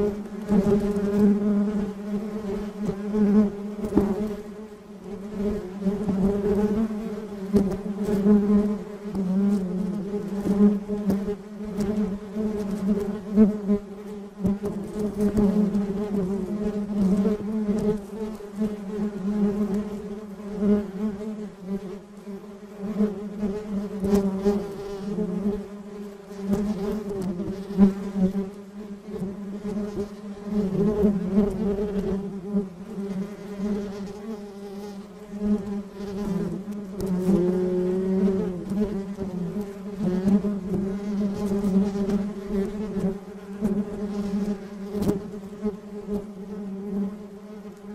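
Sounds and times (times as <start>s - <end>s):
honeybees buzzing: 0.0s - 47.9s.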